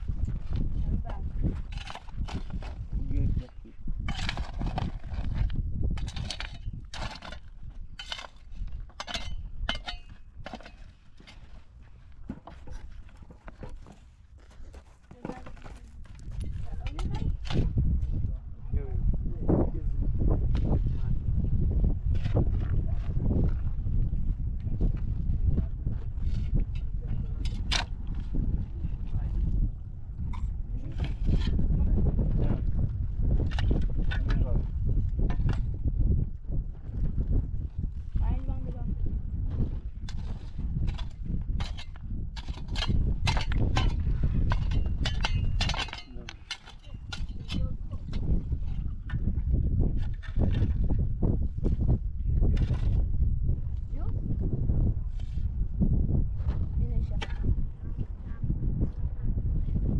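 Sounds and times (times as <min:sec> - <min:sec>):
wind rumble on microphone: 0:00.0 - 0:59.9
shovel striking stony soil: 0:01.1 - 0:02.8, 0:04.0 - 0:11.7, 0:26.4 - 0:28.2, 0:33.4 - 0:34.6, 0:35.2 - 0:35.8, 0:40.0 - 0:49.2, 0:50.0 - 0:51.0, 0:52.5 - 0:53.0, 0:57.2 - 0:57.5.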